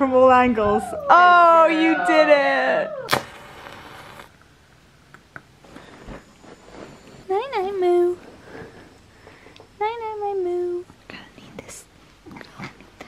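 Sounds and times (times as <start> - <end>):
puppy whining: 0.6 - 3.2.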